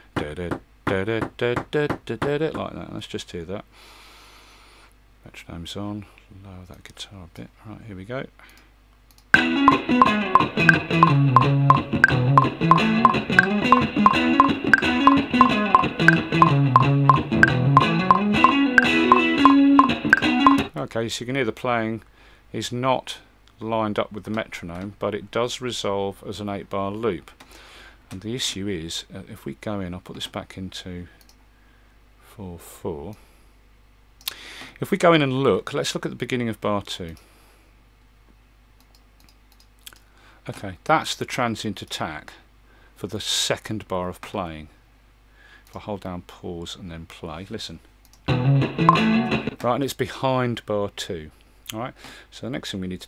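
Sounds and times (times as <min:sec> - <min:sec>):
guitar solo: 0:09.4 - 0:20.7, 0:48.3 - 0:49.6
metronome clicking: 0:09.4 - 0:20.7, 0:48.8 - 0:49.5
computer mouse clicks: 0:38.8 - 0:40.1.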